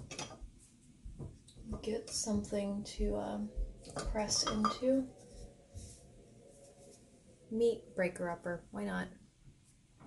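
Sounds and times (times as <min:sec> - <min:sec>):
kitchen utensils clinking: 0:03.9 - 0:05.0.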